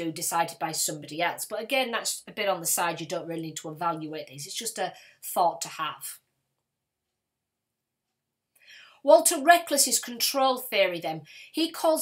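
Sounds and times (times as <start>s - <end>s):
faint breath drawn in: 8.6s - 9.0s.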